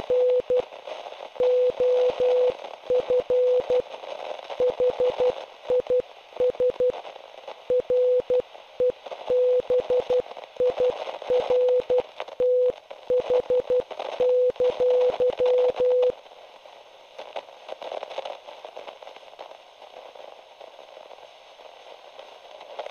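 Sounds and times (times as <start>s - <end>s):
morse code beeps: 0.0s - 0.6s, 1.4s - 3.8s, 4.6s - 6.9s, 7.7s - 16.1s
radio static with crackles: 0.0s - 22.9s.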